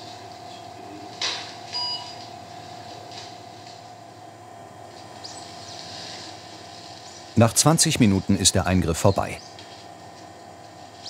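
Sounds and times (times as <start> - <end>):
equipment hum: 0.0 - 11.0.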